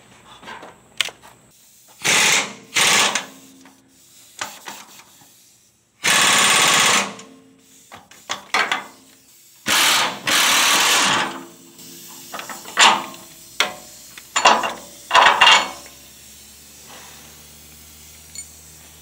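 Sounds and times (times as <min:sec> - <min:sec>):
pneumatic impact wrench hammering: 0:01.0 - 0:19.0.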